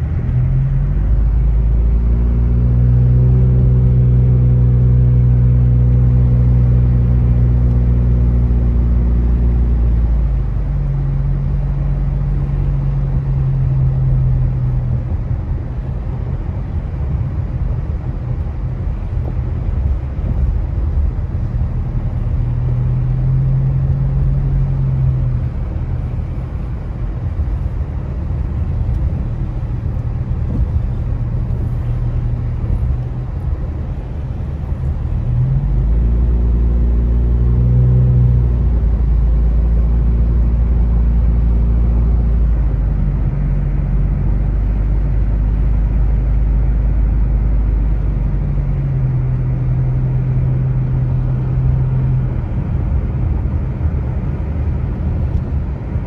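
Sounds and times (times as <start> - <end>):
car engine running: 0.0 - 56.0.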